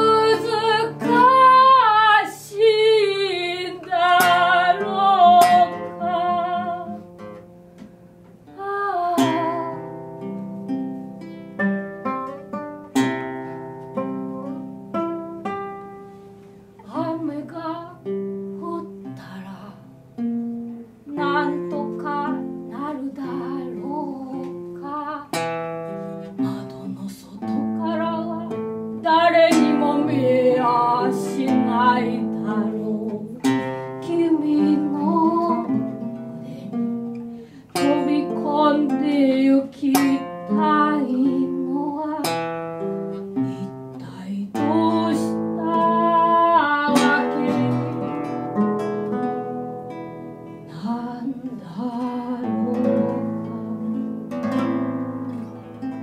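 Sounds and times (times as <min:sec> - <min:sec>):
woman singing: 0:00.0 - 0:07.0, 0:08.5 - 0:09.9, 0:16.8 - 0:20.0, 0:21.0 - 0:25.4, 0:26.3 - 0:42.4, 0:43.4 - 0:48.4, 0:50.6 - 0:54.1
fingerpicked acoustic guitars: 0:00.0 - 0:56.0.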